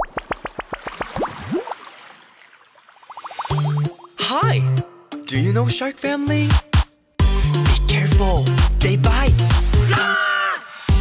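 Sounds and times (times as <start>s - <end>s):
cartoon bubble plips: 0.0s - 1.8s, 3.1s - 4.2s
music with heavy bass: 6.3s - 10.1s.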